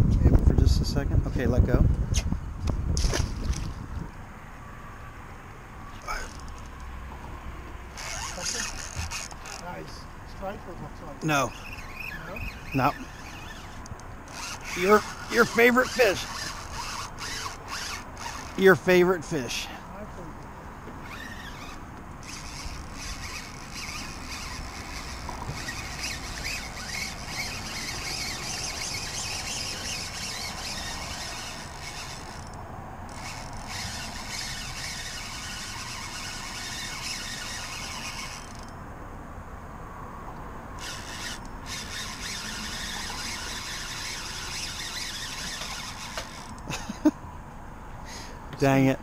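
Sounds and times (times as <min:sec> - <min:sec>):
fishing reel drag squealing: 0:07.9 - 0:10.0, 0:11.2 - 0:19.8, 0:21.0 - 0:38.8, 0:40.8 - 0:47.0.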